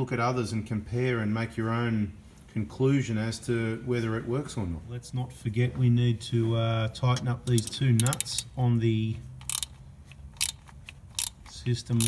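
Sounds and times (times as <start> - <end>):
ratchet spanner clicking: 7.5 - 8.6, 9.4 - 12.0.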